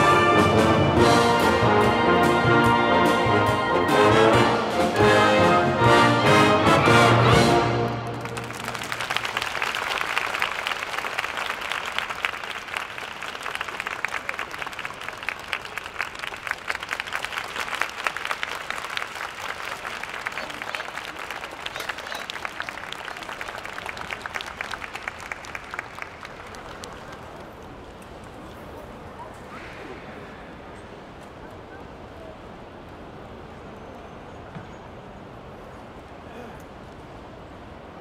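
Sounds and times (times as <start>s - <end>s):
audience applauding: 6.7s - 28.6s.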